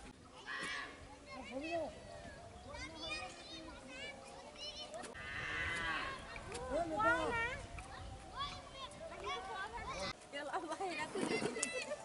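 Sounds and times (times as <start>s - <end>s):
voices: 0.2s - 12.0s
cow mooing: 5.2s - 6.2s.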